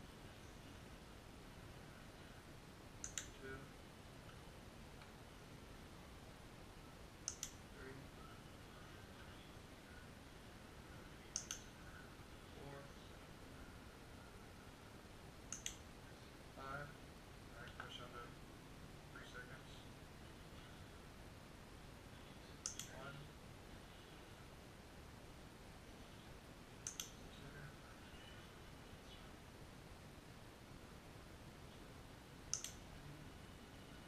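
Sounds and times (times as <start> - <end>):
sharp high clicks: 3.0 - 3.5, 7.2 - 7.7, 11.3 - 11.8, 15.5 - 15.9, 22.6 - 23.0, 26.8 - 27.2, 32.5 - 32.9.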